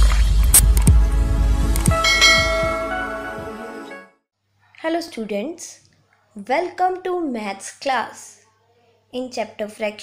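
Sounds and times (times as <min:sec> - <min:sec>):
bell-like chime: 0:02.0 - 0:03.2.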